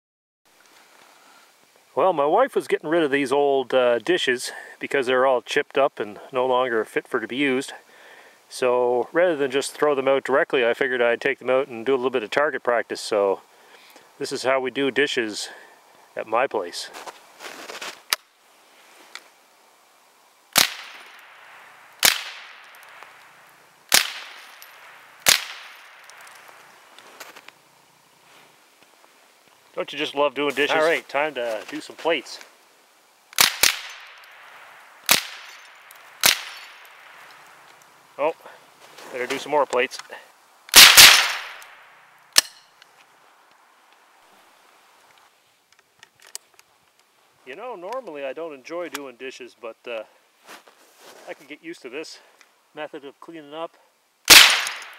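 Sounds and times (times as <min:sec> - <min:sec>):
rifle shots: 0:20.6 - 0:21.4, 0:22.0 - 0:22.7, 0:23.9 - 0:26.2, 0:33.4 - 0:34.2, 0:35.0 - 0:35.6, 0:36.2 - 0:37.1, 0:40.7 - 0:41.8, 0:54.3 - 0:54.9.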